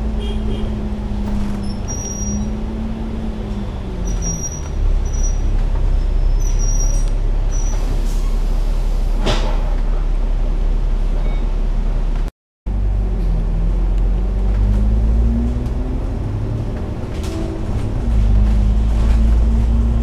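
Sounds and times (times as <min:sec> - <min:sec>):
bus engine rumbling: 0:00.0 - 0:20.0.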